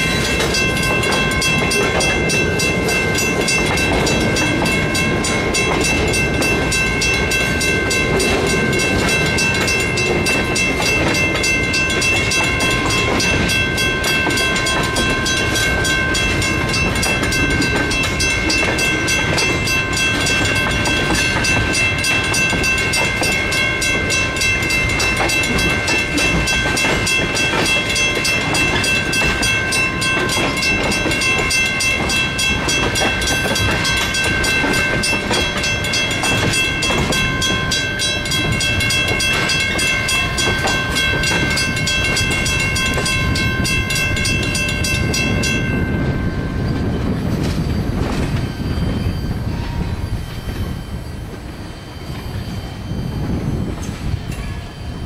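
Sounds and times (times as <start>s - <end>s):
freight train rumbling: 0.0s - 55.0s
wheel clatter over rail joints: 0.0s - 55.0s
high-pitched ringing tone: 48.2s - 55.0s.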